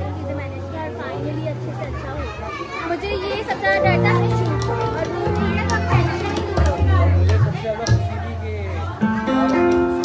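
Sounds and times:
people talking at once: 0.0 - 10.0.

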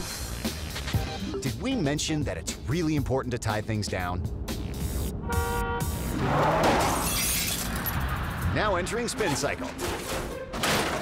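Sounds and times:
glass shattering: 6.8 - 8.1.

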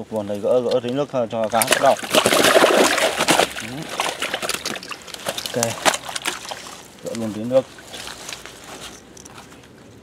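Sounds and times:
fish splashing in net: 1.5 - 7.0.

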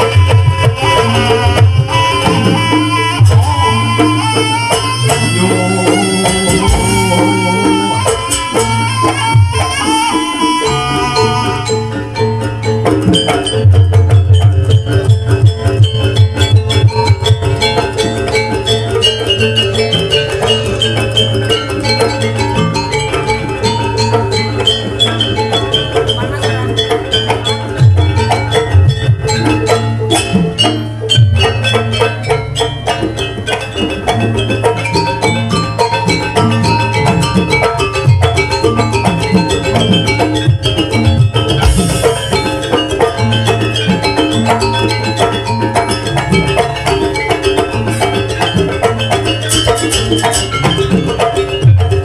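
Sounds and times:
gamelan dance music: 0.0 - 52.0
low drumming: 0.0 - 52.0
metal percussion struck rhythmically: 0.0 - 52.0.

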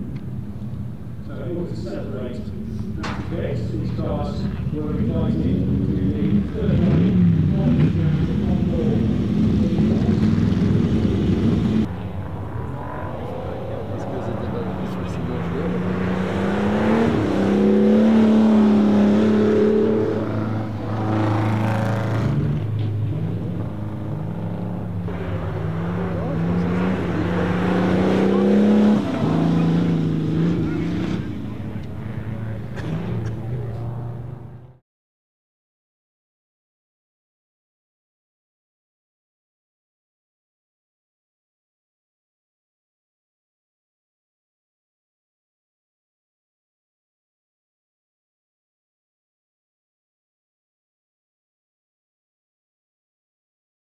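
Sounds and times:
car engine revving: 0.1 - 34.8.

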